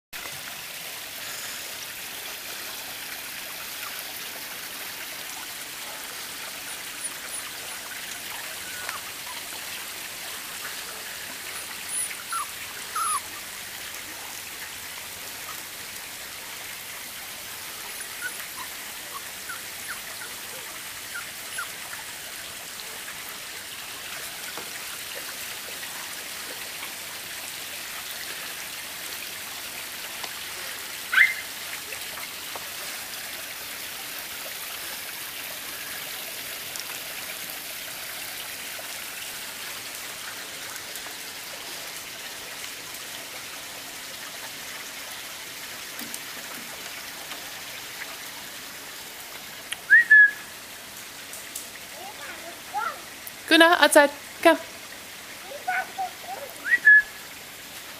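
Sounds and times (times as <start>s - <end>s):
puppies squeaking: 6.6s - 9.4s, 11.5s - 13.4s, 18.0s - 21.8s, 31.2s - 31.4s
puppy yelping: 6.6s - 9.5s, 11.5s - 13.4s, 18.0s - 21.8s, 31.1s - 31.5s.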